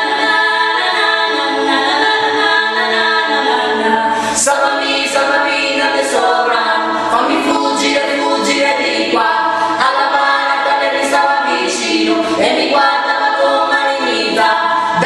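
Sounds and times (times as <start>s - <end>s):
a cappella trio singing in harmony: 0.0s - 15.0s.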